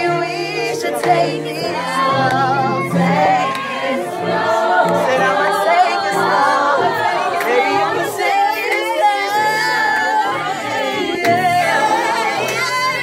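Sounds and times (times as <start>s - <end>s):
group singing gospel song: 0.0s - 13.0s.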